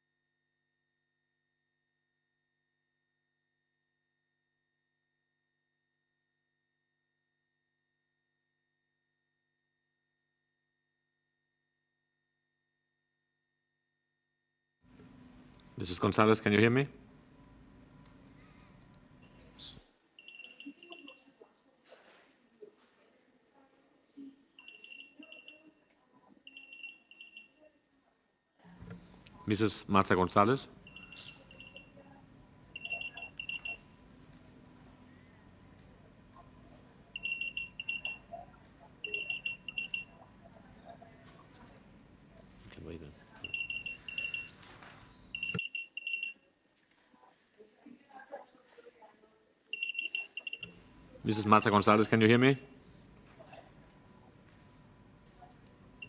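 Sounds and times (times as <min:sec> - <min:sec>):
faint room noise: 0:14.8 - 0:56.0
faint low murmur: 0:14.9 - 0:19.9, 0:27.6 - 0:45.5, 0:50.6 - 0:56.0
trilling electronic beeps: 0:32.8 - 0:33.8, 0:39.0 - 0:40.1.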